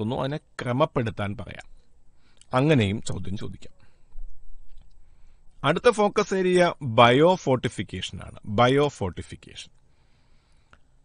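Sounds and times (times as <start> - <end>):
man speaking: 0.0 - 1.7, 2.5 - 3.8, 5.6 - 9.7.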